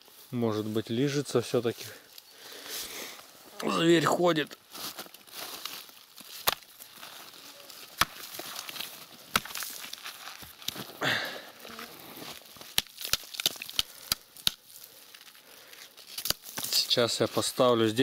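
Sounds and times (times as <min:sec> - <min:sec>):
hands rustling dry leaves: 0:00.0 - 0:18.0.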